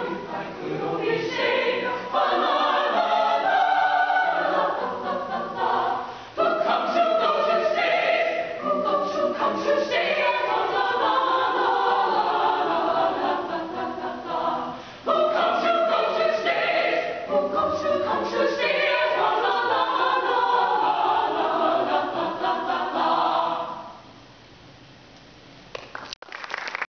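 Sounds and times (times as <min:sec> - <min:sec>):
choir singing a cappella: 0:00.0 - 0:24.1.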